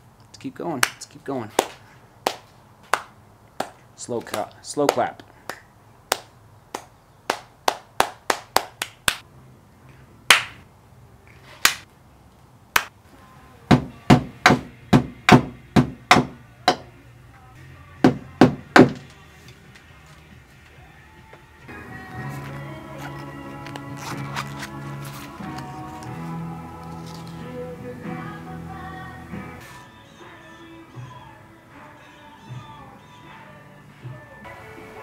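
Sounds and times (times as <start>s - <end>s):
hands clapping: 0.8s - 1.0s, 1.6s - 9.2s, 10.3s - 10.6s, 11.6s - 11.9s
background music: 13.1s - 35.0s
hammer knocks: 13.7s - 16.9s.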